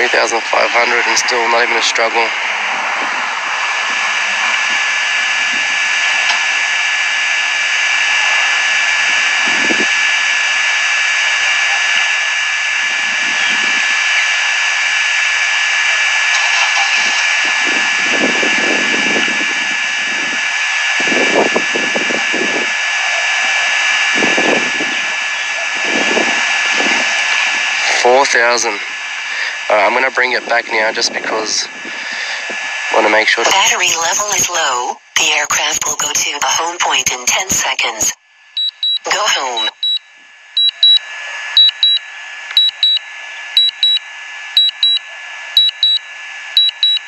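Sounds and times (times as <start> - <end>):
steady rushing noise: 0.0 - 11.3
thin high whine: 0.0 - 47.0.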